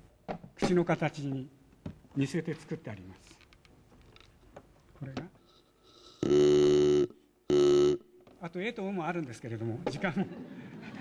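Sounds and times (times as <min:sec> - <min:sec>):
reed whistle vowel-like buzzing tone: 0:05.9 - 0:08.2.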